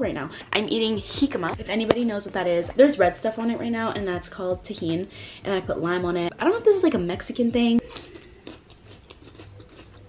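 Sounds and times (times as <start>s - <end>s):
crisp crunching of chewing: 7.9s - 10.0s.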